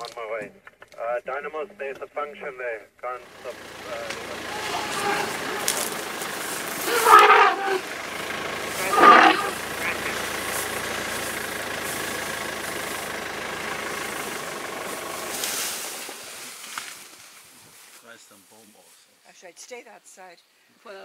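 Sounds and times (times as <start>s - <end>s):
vehicle engine running: 3.1s - 17.2s.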